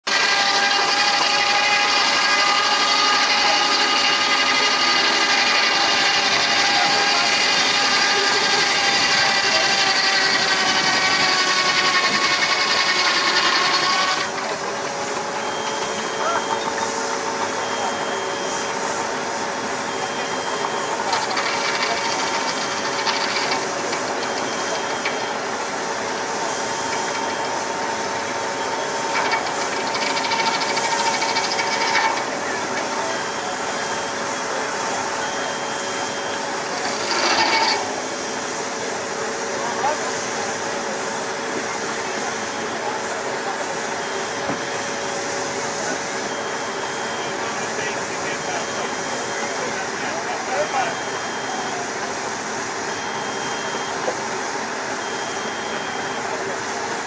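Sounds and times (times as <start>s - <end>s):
saw blade whining through log: 0.0s - 57.0s.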